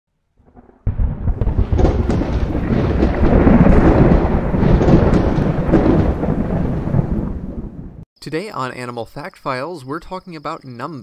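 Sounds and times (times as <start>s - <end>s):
thunder-like rumbling: 0.4s - 8.0s.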